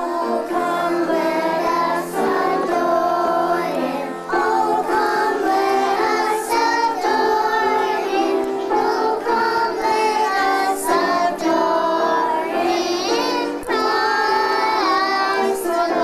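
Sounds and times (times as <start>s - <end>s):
young children singing: 0.0s - 16.0s.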